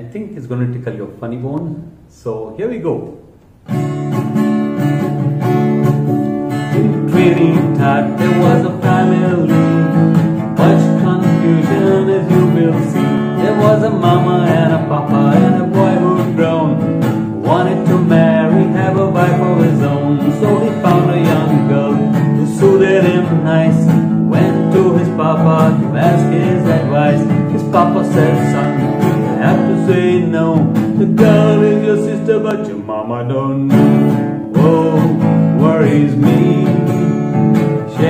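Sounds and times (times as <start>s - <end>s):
acoustic guitar strumming: 3.2s - 38.0s
man singing: 6.6s - 38.0s.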